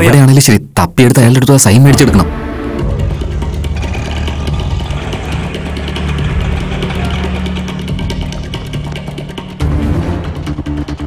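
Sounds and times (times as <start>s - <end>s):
small engine idling with ticking: 3.1s - 9.6s.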